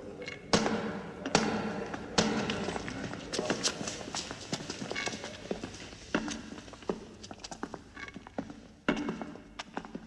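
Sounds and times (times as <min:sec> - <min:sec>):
footsteps on stone floor: 0:02.5 - 0:10.0.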